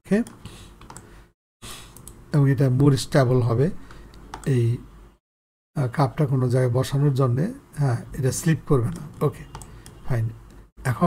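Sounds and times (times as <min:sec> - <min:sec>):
keyboard clicks: 0:08.9 - 0:10.0.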